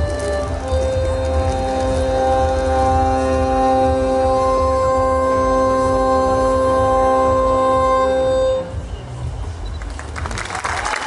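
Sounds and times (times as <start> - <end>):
accordions holding a chord: 0.0 - 8.9.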